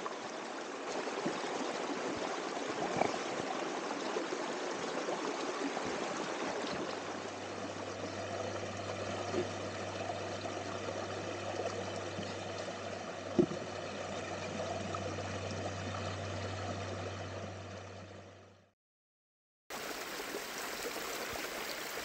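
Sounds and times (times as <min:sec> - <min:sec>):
water rushing over rocks: 0:00.0 - 0:08.4
low hum: 0:06.8 - 0:18.7.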